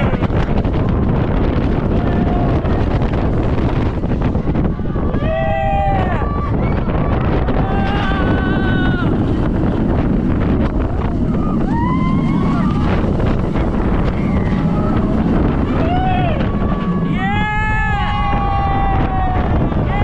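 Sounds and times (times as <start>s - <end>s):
wind rushing over microphone: 0.0s - 20.0s
riders yelling and shrieking: 4.6s - 9.7s, 10.6s - 20.0s.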